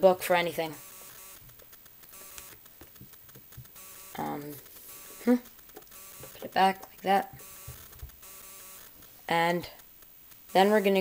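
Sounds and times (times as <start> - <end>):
steady low hiss: 0.0 - 11.0
fingers tapping tablet: 0.8 - 11.0.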